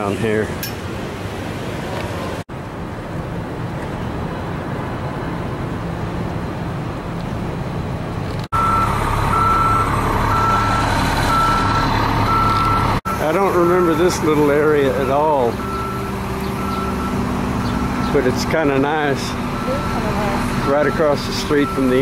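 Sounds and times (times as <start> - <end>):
engine humming: 0.0 - 22.0
street traffic hum: 0.0 - 22.0
vehicle reversing alarm beeps: 8.6 - 18.3, 19.2 - 22.0.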